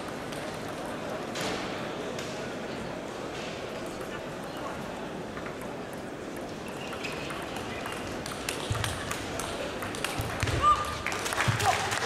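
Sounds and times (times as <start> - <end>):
murmur of sports hall: 0.0 - 12.0
table tennis ball clicking: 3.9 - 10.6.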